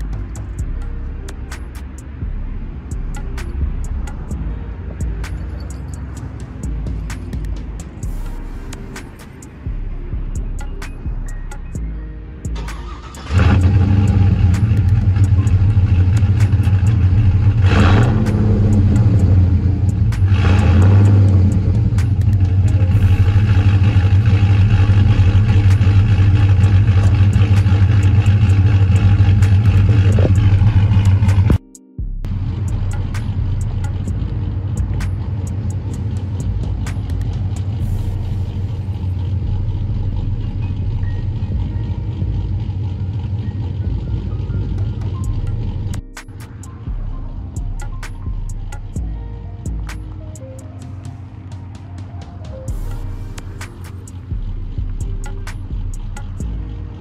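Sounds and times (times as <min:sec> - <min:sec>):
engine idling: 0:00.0 - 0:31.6, 0:32.2 - 0:57.0
pickup engine starting and revving: 0:12.4 - 0:31.6, 0:32.2 - 0:57.0.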